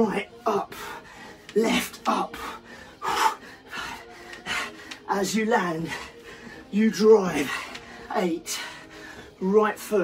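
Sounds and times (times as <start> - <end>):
man breathing hard: 0.3 - 9.4.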